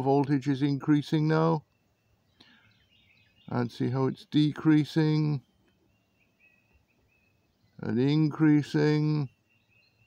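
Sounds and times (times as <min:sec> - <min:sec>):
man talking: 0:00.0 - 0:01.6, 0:03.5 - 0:05.5, 0:07.8 - 0:09.4
faint high bird chirps: 0:00.0 - 0:10.0.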